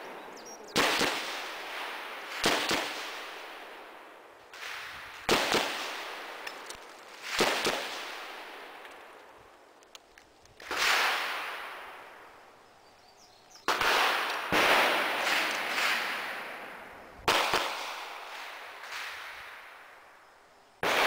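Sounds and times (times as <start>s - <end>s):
gunshots with echo: 13.7s - 19.6s.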